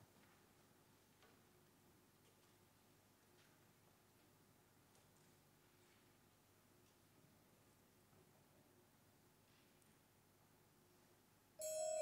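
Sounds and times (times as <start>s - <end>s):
mallet percussion notes ringing: 11.6s - 12.0s.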